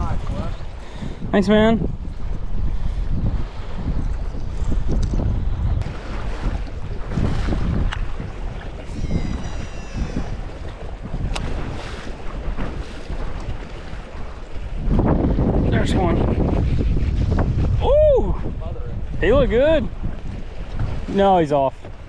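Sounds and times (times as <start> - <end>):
water lapping against boat: 0.0 - 22.0
wind buffeting microphone: 0.0 - 22.0.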